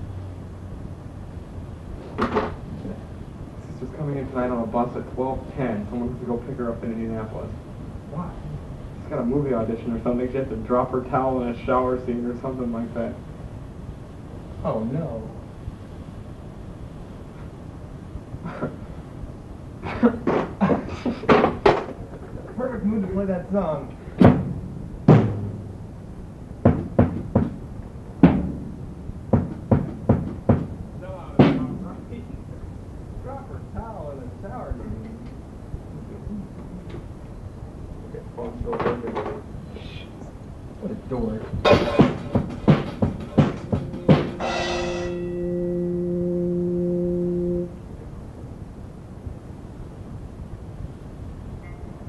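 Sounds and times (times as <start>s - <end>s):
low hiss: 0.0s - 52.0s
sharp ringing knocks: 24.2s - 25.8s, 26.6s - 27.6s, 28.2s - 30.8s, 41.6s - 45.6s
sustained musical note: 43.4s - 48.1s.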